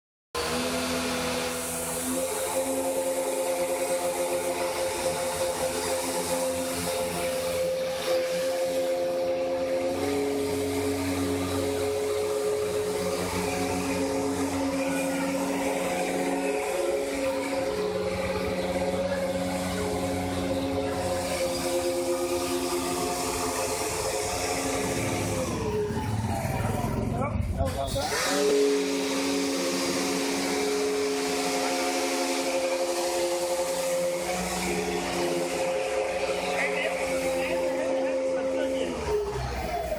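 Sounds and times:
hovercraft motors whining: 0.4 - 39.9.

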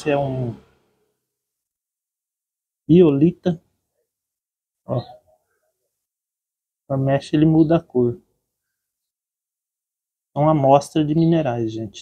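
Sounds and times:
man speaking a word: 0.0 - 0.6.

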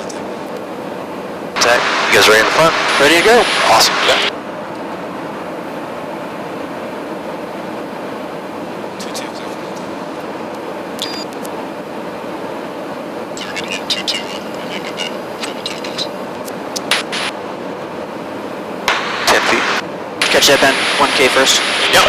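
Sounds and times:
aircraft engine and airflow rumble: 0.0 - 22.0
faint intercom chatter: 13.3 - 16.3, 18.9 - 22.0.

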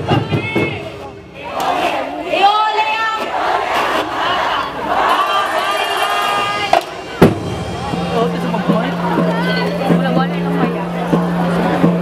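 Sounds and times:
drum music: 0.0 - 2.0, 4.9 - 12.0
crowd shouting together: 0.0 - 12.0.

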